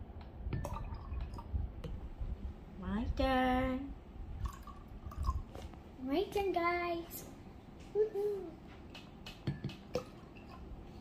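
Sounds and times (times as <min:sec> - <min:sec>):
water dripping into a glass mug: 0:00.6 - 0:01.5.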